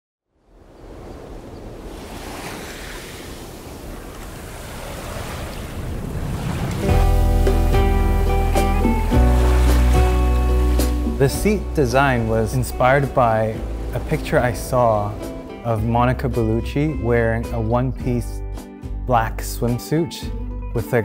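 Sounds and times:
small waves on sandy shore: 0.4 - 11.2, 12.1 - 15.5
music with sustained chords and bass: 6.8 - 21.0.

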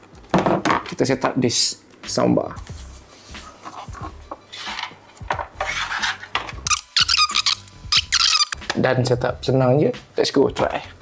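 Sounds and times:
soundbar scraping on desk: 5.6 - 6.6.

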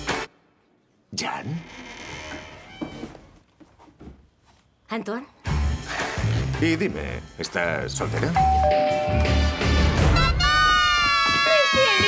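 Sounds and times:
door creaking open: 1.6 - 3.5.

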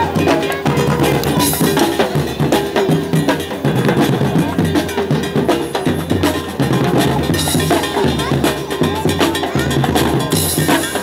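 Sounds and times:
fast rhythmic drumming: 0.0 - 11.0.

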